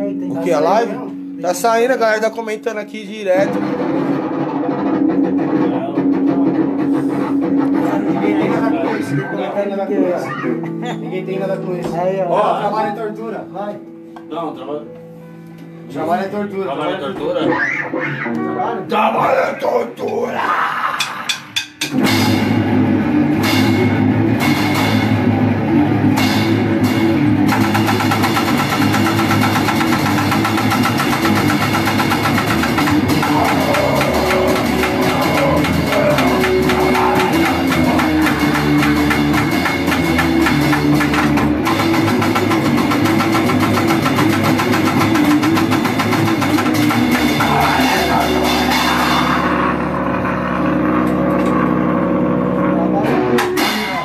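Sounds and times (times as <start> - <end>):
distorted electric guitar: 0.0 - 13.2, 17.1 - 18.9, 20.1 - 54.0
bass guitar: 0.0 - 54.0
drum kit: 0.5 - 9.3, 20.9 - 54.0.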